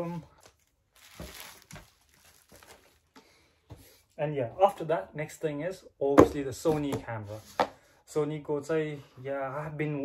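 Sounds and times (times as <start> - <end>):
bubble wrap crinkling: 0.0 - 3.2.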